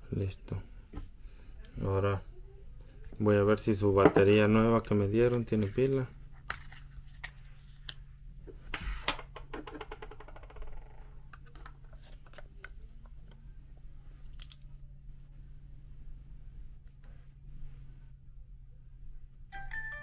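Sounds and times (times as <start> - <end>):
steady low hum: 0.0 - 19.7.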